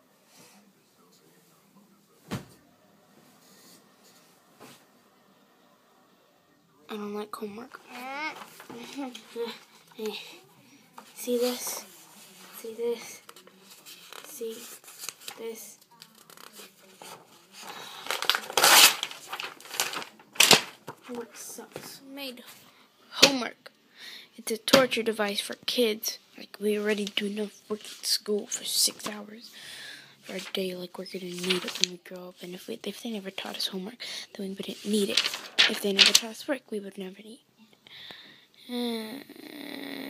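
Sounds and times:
soft rustling of comforter: 7.8s - 15.2s
paper rustling and flapping: 7.9s - 10.2s, 13.2s - 21.9s, 26.8s - 29.2s, 30.2s - 32.0s, 34.6s - 36.5s.

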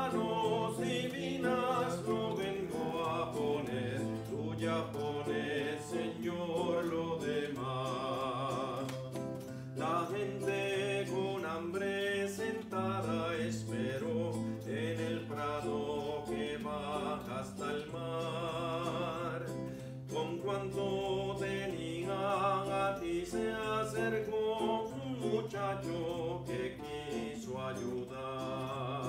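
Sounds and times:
acoustic guitar: 0.0s - 29.0s
man singing a hymn: 0.0s - 29.0s.

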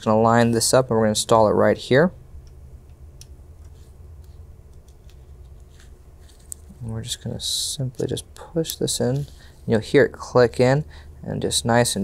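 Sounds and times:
low steady hum: 0.0s - 12.0s
cable handling ticks and rustles: 2.5s - 9.8s.

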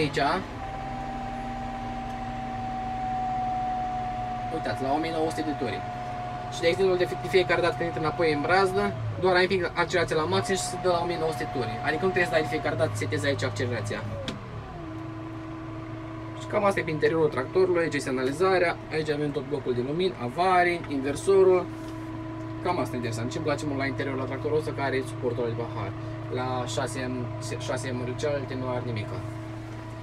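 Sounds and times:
high whine: 0.0s - 30.0s
tractor engine running: 0.0s - 30.0s.

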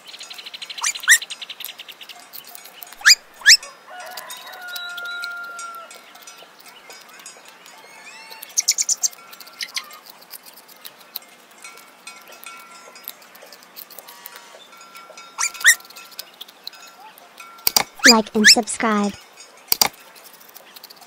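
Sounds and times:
birds calling: 0.0s - 10.2s, 15.4s - 17.0s.

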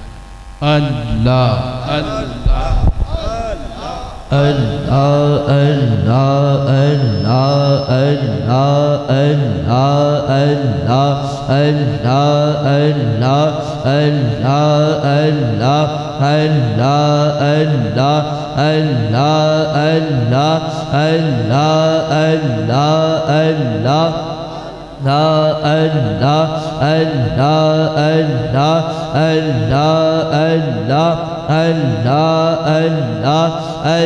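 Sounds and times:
man chanting: 0.6s - 34.0s.

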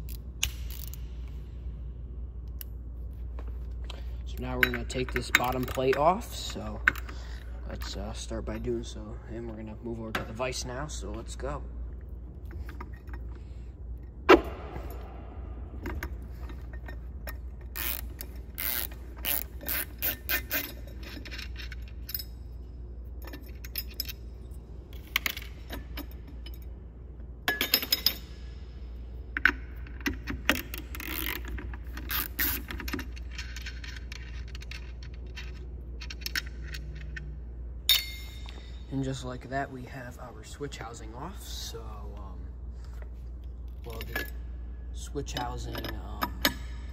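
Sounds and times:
steady low hum: 0.0s - 46.9s
ratchet wrench clicking: 0.1s - 1.1s, 17.6s - 22.3s, 30.4s - 37.2s.

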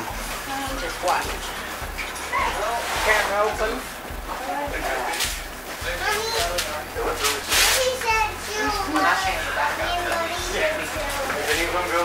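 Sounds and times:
children chattering: 5.9s - 11.9s.

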